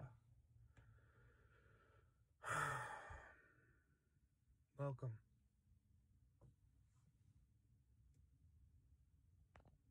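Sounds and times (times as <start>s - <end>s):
man sighing: 2.4s - 3.3s.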